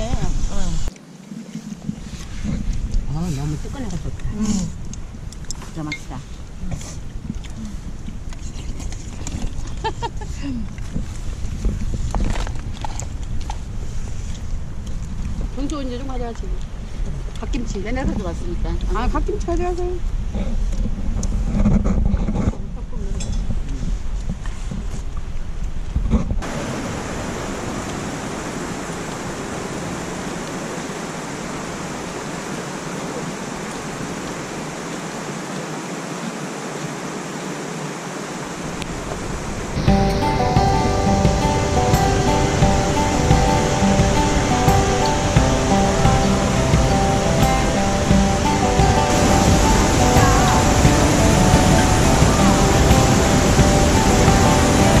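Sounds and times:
waterfall rushing: 26.4s - 55.0s
music with sustained notes: 39.8s - 55.0s.

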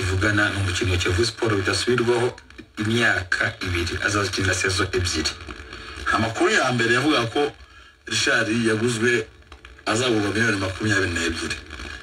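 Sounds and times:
person talking: 9.9s - 11.6s.

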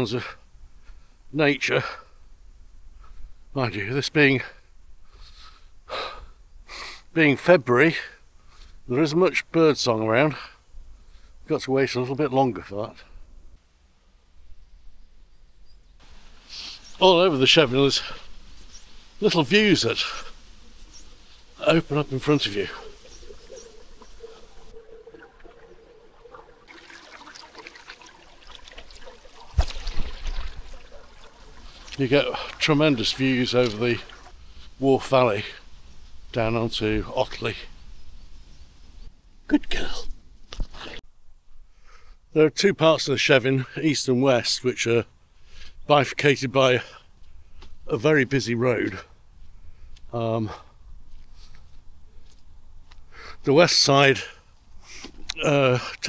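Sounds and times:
man breathing: 5.0s - 7.0s, 41.6s - 42.2s
stream trickling over rocks: 16.0s - 35.8s
sharp intake of breath: 16.3s - 16.9s
man speaking: 19.2s - 20.3s, 21.6s - 23.0s, 31.9s - 34.2s.

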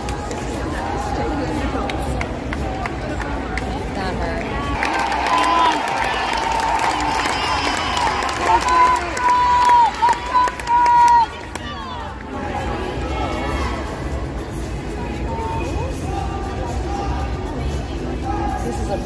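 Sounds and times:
crowd chatter: 0.0s - 19.0s
crowd cheering: 4.6s - 13.9s.

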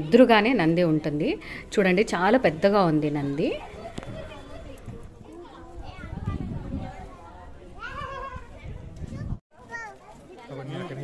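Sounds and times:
crowd talking and calling out: 1.4s - 11.0s.

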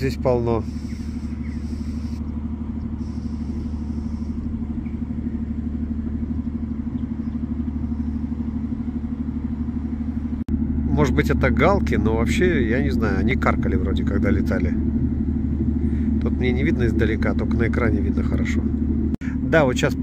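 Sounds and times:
ship diesel engine running: 0.0s - 20.0s.

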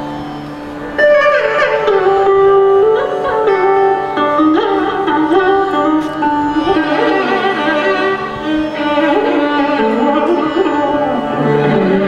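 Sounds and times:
electric mandolin melody: 0.0s - 12.0s
violin: 0.0s - 12.0s.

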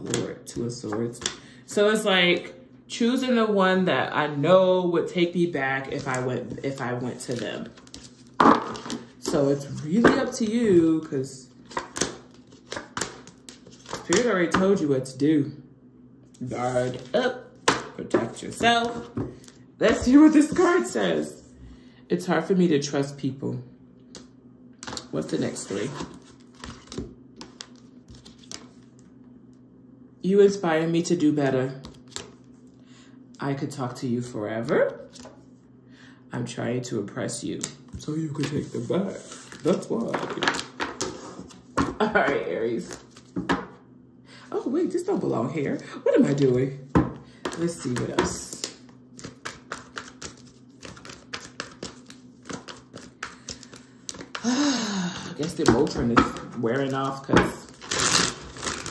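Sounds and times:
cards clicking and rustling: 11.6s - 14.6s, 47.4s - 54.5s.

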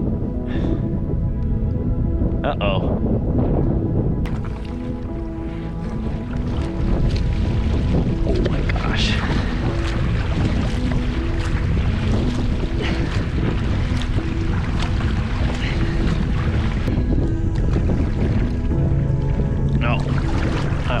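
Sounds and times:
background music with low notes: 0.0s - 21.0s
wind buffeting microphone: 0.0s - 21.0s.

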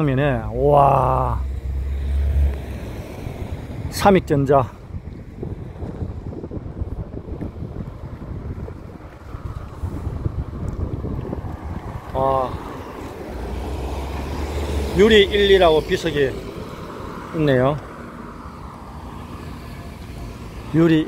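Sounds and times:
car engine hum: 0.0s - 21.0s
wind buffeting microphone: 1.4s - 21.0s.

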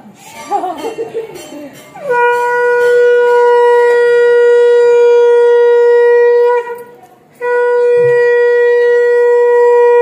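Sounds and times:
conch shell blast: 2.0s - 10.0s.

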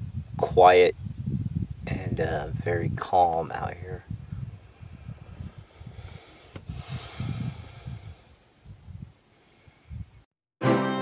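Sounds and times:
wind rumbling on microphone: 0.0s - 10.3s.

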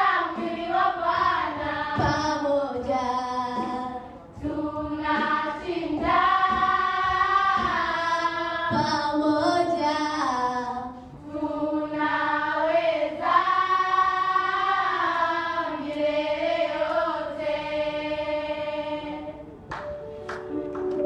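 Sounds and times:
girls choir singing: 0.0s - 19.7s.

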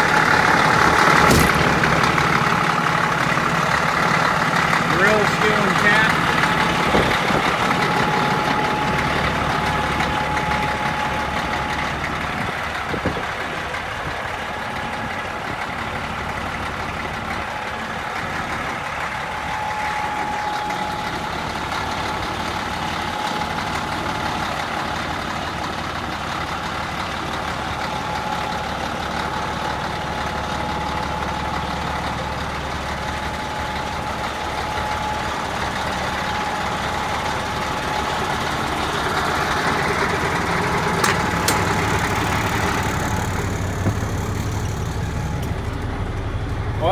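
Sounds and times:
engine knock: 0.0s - 45.8s
diesel truck engine idling: 0.0s - 46.9s.

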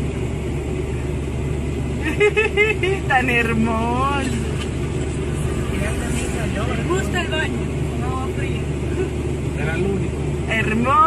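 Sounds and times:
car engine hum: 0.0s - 11.0s
people talking: 2.0s - 4.5s, 5.6s - 11.0s.

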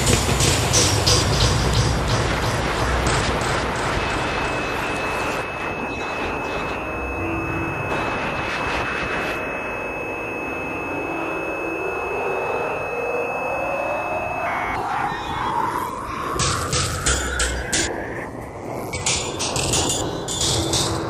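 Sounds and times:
high sine tone: 0.0s - 21.0s
rushing noise wash: 0.0s - 21.0s
low tone gliding upward: 5.4s - 16.4s.

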